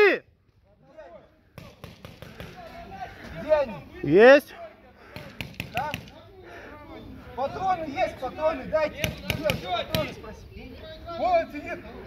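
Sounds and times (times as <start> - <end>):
paintball markers firing: 1.6 - 2.7, 5.2 - 6.2, 9.0 - 10.1.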